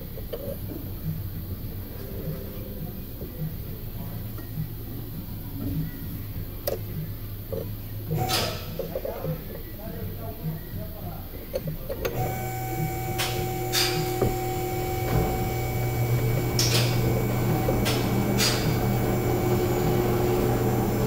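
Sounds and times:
machine hum: 12.0s - 21.0s.

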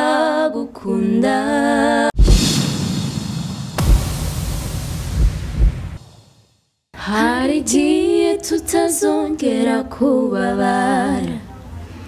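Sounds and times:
deep rumble: 2.2s - 6.1s
low thumps: 2.2s - 6.3s
hissing noise: 2.2s - 6.4s.

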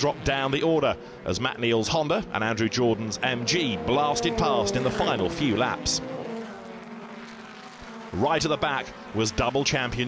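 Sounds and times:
racing car engines passing: 0.0s - 10.0s.

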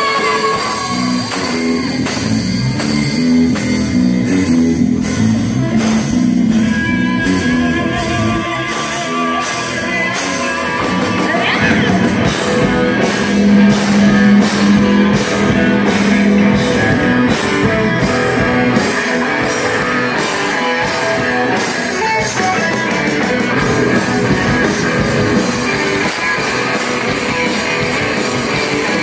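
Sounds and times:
bass guitar: 0.0s - 29.0s
drum kit beat: 0.0s - 29.0s
electric guitars: 0.0s - 29.0s.

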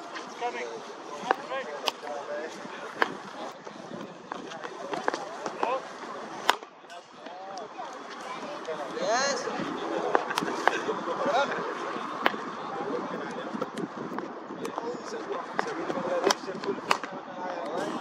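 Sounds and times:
people talking: 0.0s - 18.0s
cricket balls striking bats: 1.2s - 2.2s, 2.9s - 5.8s, 6.4s - 7.4s, 10.1s - 10.8s, 12.2s - 12.6s, 15.6s - 17.2s.

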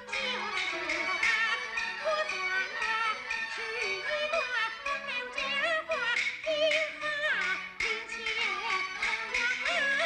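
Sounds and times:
instrumental ensemble melody: 0.0s - 10.0s
opera singing with vibrato: 0.0s - 10.0s.

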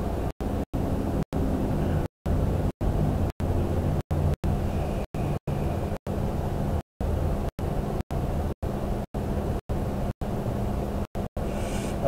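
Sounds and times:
faint hum: 0.0s - 12.0s
low background rumble: 0.0s - 12.0s
short hiss: 11.5s - 12.0s.

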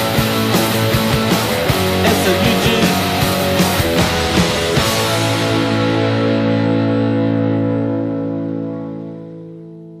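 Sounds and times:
distorted electric guitars chord: 0.0s - 9.8s.

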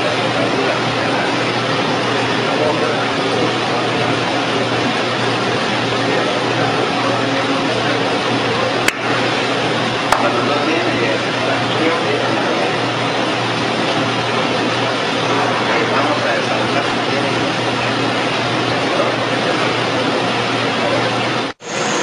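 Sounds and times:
hydraulic press humming: 0.0s - 22.0s.

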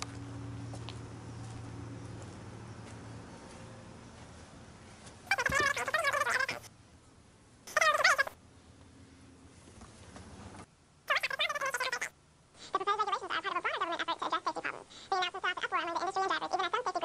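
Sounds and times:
faint low hum: 0.0s - 17.0s
squeaky high voice shouting gibberish: 5.3s - 6.7s, 7.7s - 8.4s, 11.1s - 17.0s.

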